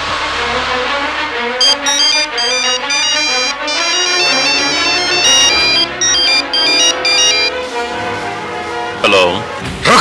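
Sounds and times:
mobile phone ringtone: 0:01.6 - 0:07.6.

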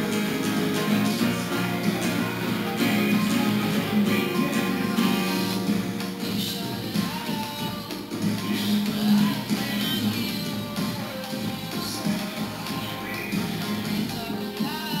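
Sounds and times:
acoustic guitar strumming: 0:00.0 - 0:15.0.

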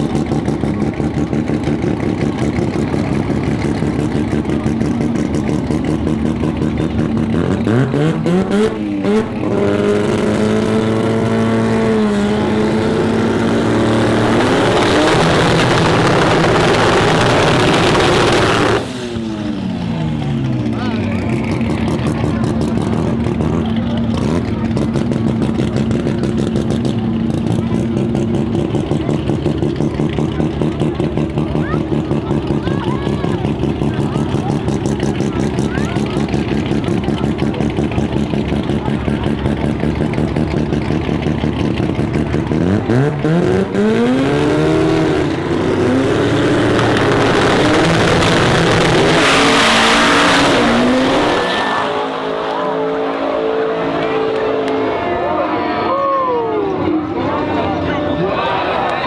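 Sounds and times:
drag car engine revving: 0:00.0 - 0:59.0.

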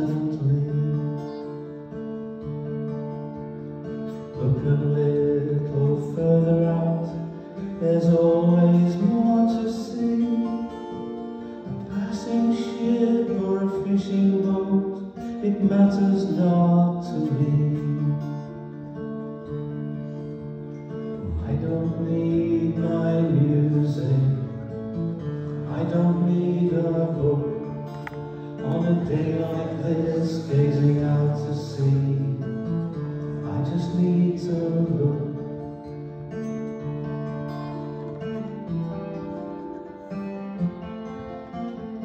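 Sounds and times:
man singing: 0:00.0 - 0:01.7, 0:04.1 - 0:18.8, 0:20.9 - 0:36.0
strummed acoustic guitar: 0:00.0 - 0:42.0.

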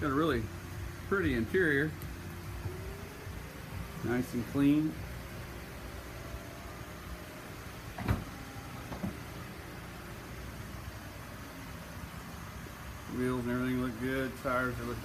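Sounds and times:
low hum with faint tones: 0:00.0 - 0:15.0.

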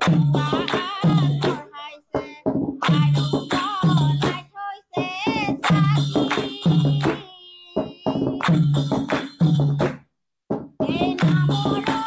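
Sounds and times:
people clapping: 0:00.0 - 0:04.4, 0:05.3 - 0:10.0, 0:10.8 - 0:12.0
jingling percussion: 0:00.0 - 0:10.0, 0:10.6 - 0:12.0
women singing a hymn: 0:00.2 - 0:08.4, 0:10.8 - 0:12.0.

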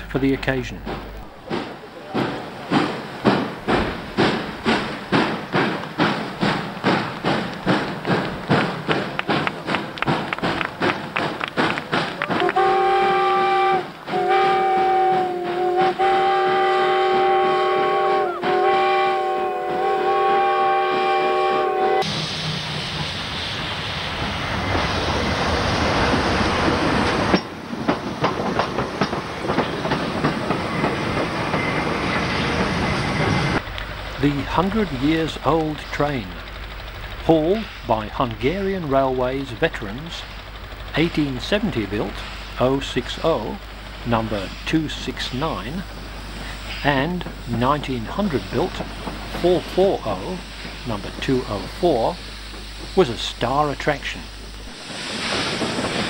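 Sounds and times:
steam locomotive exhaust beats: 0:00.0 - 0:56.0
steam whistle blasts: 0:12.3 - 0:22.2
steady rushing noise: 0:22.0 - 0:56.0.

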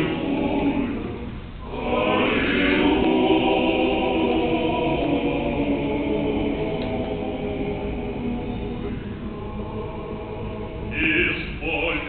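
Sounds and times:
male choir singing a hymn: 0:00.0 - 0:12.0.

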